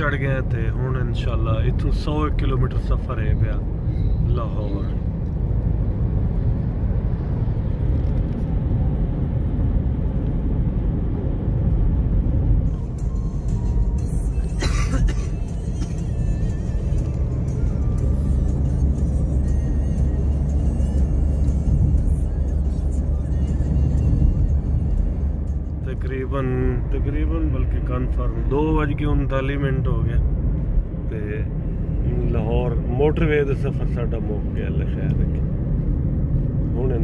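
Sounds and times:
car engine and tyres rumbling: 0:00.0 - 0:37.0
music playing: 0:12.7 - 0:26.1.

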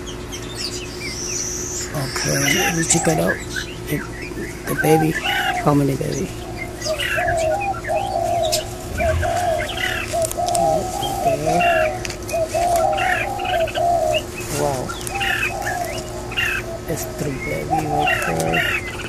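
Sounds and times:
birds calling low notes: 0:00.0 - 0:19.0
higher bird chirps: 0:00.0 - 0:19.0.

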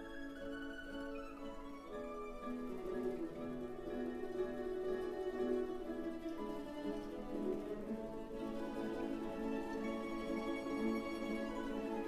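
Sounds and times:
mandolin orchestra playing slowly: 0:00.0 - 0:12.0.

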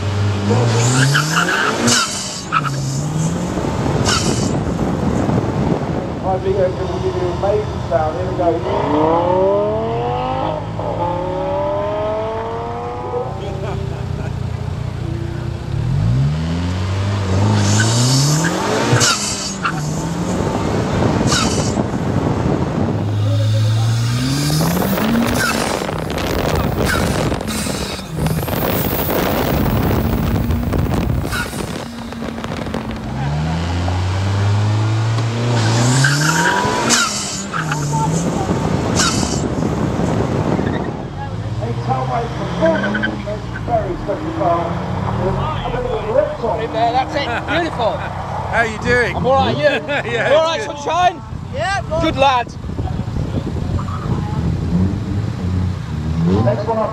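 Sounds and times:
wind rushing over microphone: 0:03.0 - 0:06.7, 0:19.6 - 0:36.9, 0:37.7 - 0:41.5, 0:51.3 - 0:56.3
car engine accelerating through gears: 0:08.5 - 0:48.5, 0:52.7 - 0:56.9.

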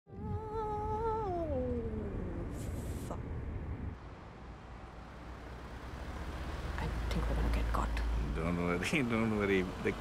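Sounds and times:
low rumble of road traffic: 0:00.1 - 0:10.0.

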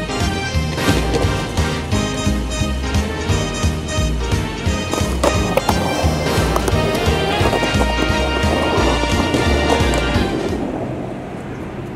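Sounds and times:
background music with bass line: 0:00.0 - 0:10.6.

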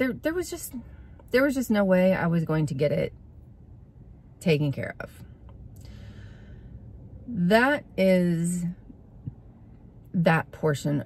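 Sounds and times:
faint low rumble: 0:00.0 - 0:11.0.

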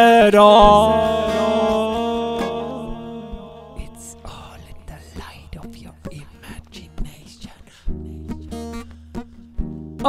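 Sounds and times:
guitar chord ringing: 0:00.0 - 0:05.8
soft breathy whispering: 0:04.0 - 0:08.4.

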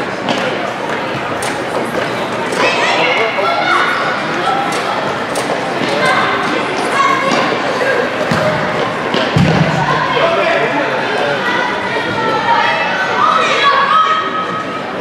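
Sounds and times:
voices of players and spectators: 0:00.0 - 0:15.0.

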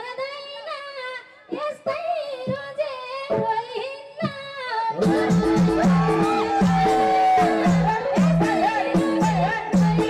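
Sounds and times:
woman singing into microphone: 0:00.0 - 0:10.0.

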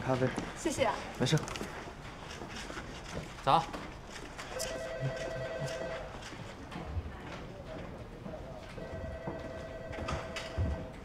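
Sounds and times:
telephone ringing two-tone warble: 0:04.6 - 0:06.1, 0:08.8 - 0:10.9.

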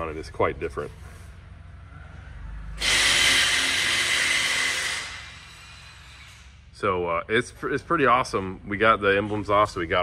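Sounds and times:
low hum: 0:00.1 - 0:10.0
loud hiss of air: 0:02.8 - 0:05.7.

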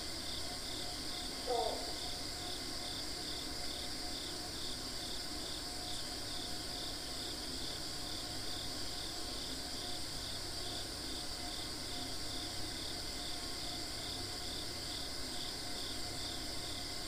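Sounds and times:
insects chirping: 0:00.0 - 0:17.0.

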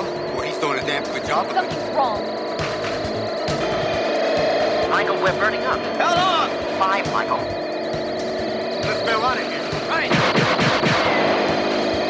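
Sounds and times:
held background score: 0:00.0 - 0:12.0
laser beam sound effect: 0:00.0 - 0:12.0.

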